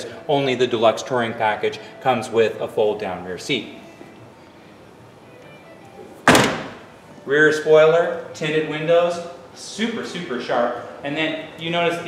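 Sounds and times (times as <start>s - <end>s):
car trunk lid thunk: 6.2s - 6.9s.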